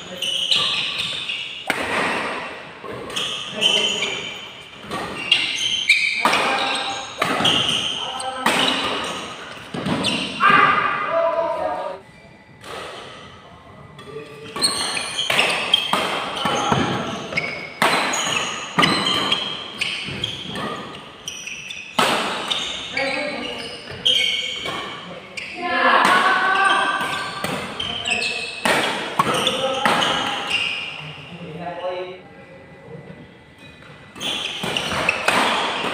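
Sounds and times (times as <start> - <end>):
rackets hitting shuttlecock: 0.4 - 3.8, 4.8 - 10.5, 14.5 - 21.0, 28.6 - 30.5, 34.2 - 35.9
players' voices: 1.7 - 12.1, 22.9 - 33.6.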